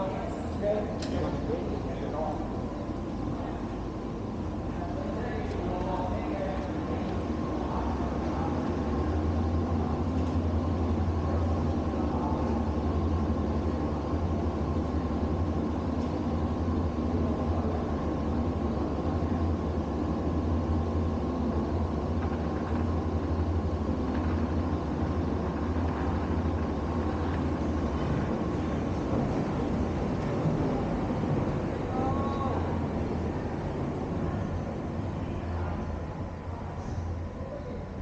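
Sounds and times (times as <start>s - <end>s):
low mechanical hum: 0.0s - 38.0s.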